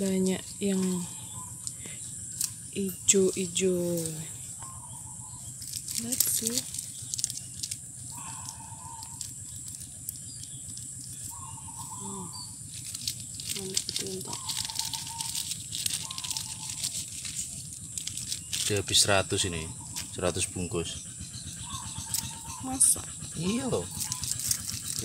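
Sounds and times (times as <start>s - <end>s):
plastic bags crinkling: 5.6s - 8.2s, 12.6s - 19.0s, 24.0s - 25.0s.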